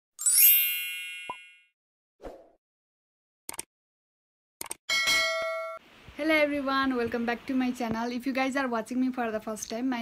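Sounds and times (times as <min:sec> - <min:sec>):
bright bell ding: 0:04.9 - 0:05.8.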